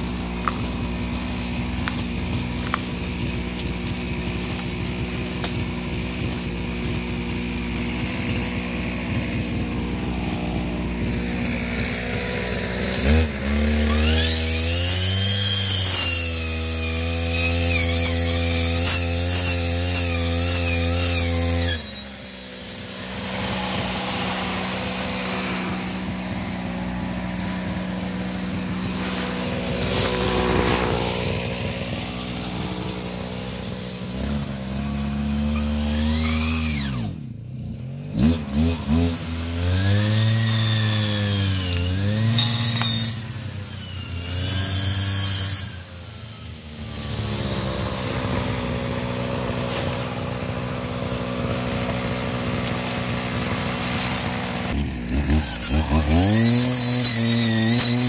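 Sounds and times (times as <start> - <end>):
brush cutter engine revving: 0.0 - 58.0.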